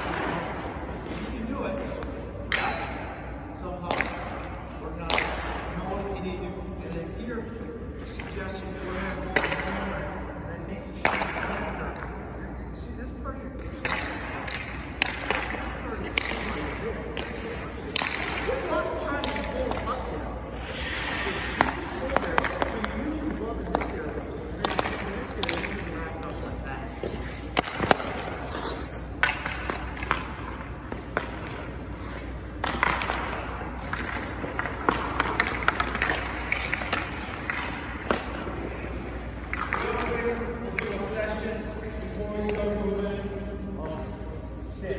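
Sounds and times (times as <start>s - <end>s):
low rink hum: 0.0s - 44.9s
skate blades scraping ice: 18.6s - 43.3s.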